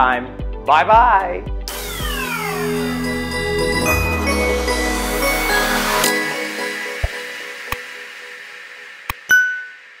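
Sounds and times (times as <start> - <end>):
outro music: 1.7 - 9.2.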